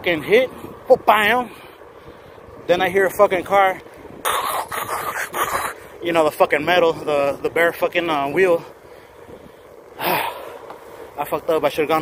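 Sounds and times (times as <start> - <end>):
man making hissing mouth noises: 4.3 - 5.8.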